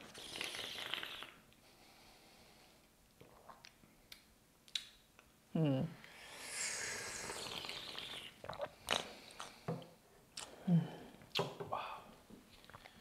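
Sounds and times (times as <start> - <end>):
slurping tea: 0.0 - 1.4, 6.5 - 9.1
mouth smacks and clicks: 3.2 - 5.3, 7.3 - 9.6, 10.4 - 10.6, 11.3 - 11.6.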